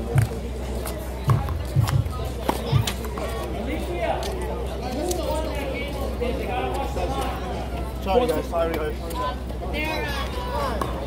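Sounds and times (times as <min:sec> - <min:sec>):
music: 0:00.0 - 0:03.0.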